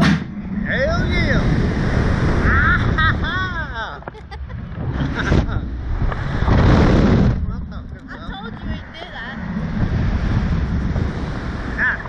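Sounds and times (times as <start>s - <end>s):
wind buffeting microphone: 0.0s - 12.0s
riders laughing: 2.2s - 6.3s.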